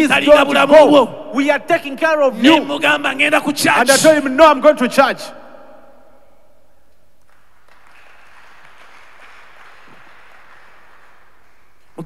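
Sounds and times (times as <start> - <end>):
crowd applauding: 7.2 - 12.0.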